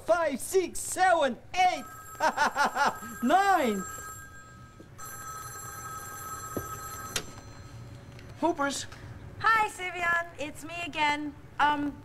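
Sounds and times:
telephone ringing: 1.8 - 8.1.

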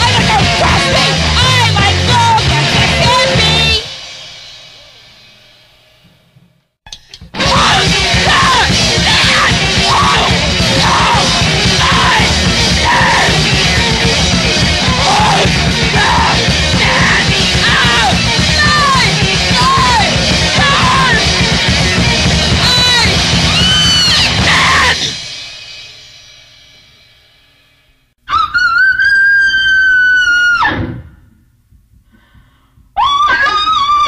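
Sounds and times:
yelled vocals: 0.0 - 3.9, 7.4 - 25.2
distorted guitar: 0.0 - 26.8
noise rock music: 0.0 - 28.1
pounding drums: 7.3 - 26.7
loud piercing high shriek: 22.5 - 25.3.

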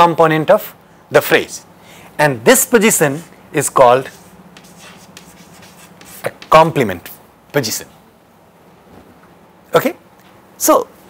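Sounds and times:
chalk scratching on chalkboard: 3.7 - 6.8
chalk tapping: 4.0 - 6.9.

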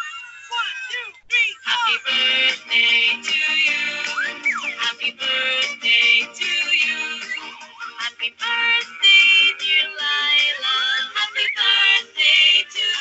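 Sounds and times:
music with synthetic singing voice: 0.8 - 13.0.

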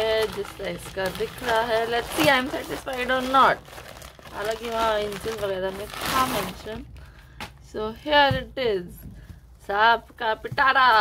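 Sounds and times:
woman speaking: 0.0 - 3.7, 4.3 - 6.9, 7.7 - 11.0.

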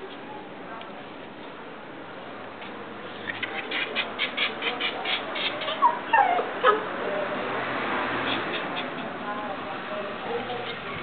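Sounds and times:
dog whimpering: 5.6 - 6.8
dog whining and yipping: 5.7 - 6.8.

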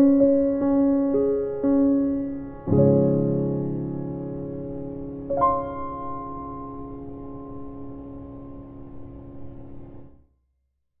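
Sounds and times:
piano chord ringing: 0.0 - 10.2.

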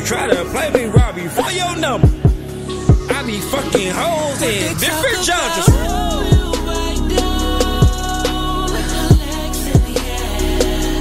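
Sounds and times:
rapping over a beat: 0.0 - 11.0
deep kick drum hits: 5.7 - 6.6.

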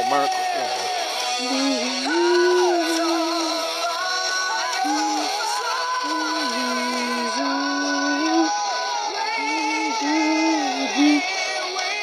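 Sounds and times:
karaoke backing track: 0.0 - 12.0
person singing a long note: 1.4 - 3.8, 4.8 - 11.6.

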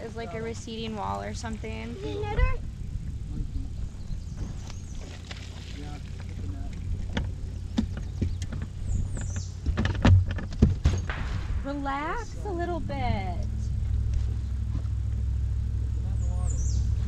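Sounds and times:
steady low hum: 0.0 - 17.0
knocks and thumps in a boat: 0.1 - 12.7.

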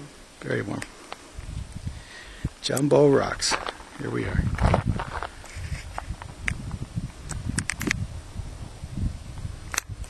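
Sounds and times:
low rumble on microphone: 3.3 - 10.0
sharp clicks: 7.3 - 8.0.

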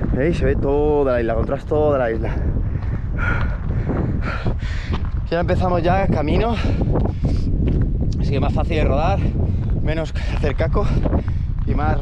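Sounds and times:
wind rumble on microphone: 0.0 - 12.0
runner breathing hard: 2.2 - 5.3, 6.4 - 8.0, 9.1 - 11.7.

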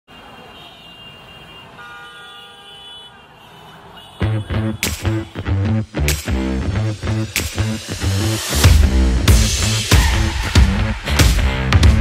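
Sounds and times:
road traffic: 0.0 - 12.0
car horns tooting: 0.1 - 5.8.

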